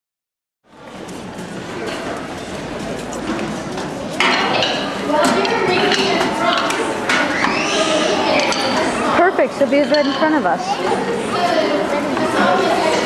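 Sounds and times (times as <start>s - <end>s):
chatter of voices echoing: 0.8s - 13.0s.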